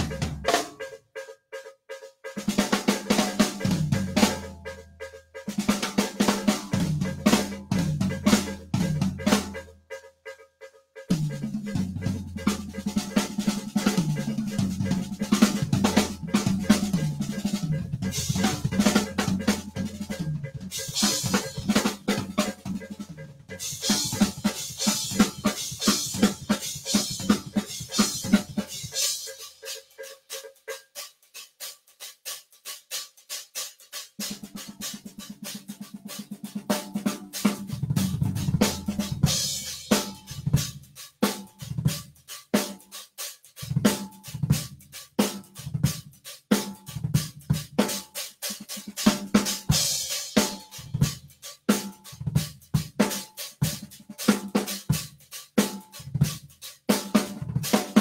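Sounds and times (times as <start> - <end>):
drum kit playing: 0.0 - 58.0.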